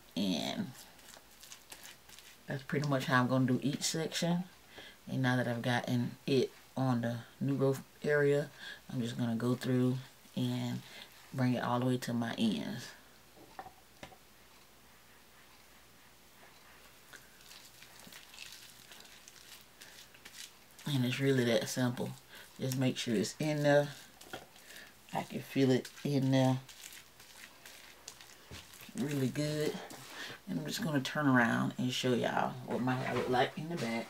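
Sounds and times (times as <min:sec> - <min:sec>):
hands squishing conditioner in wet hair: 0:17.2 - 0:30.8.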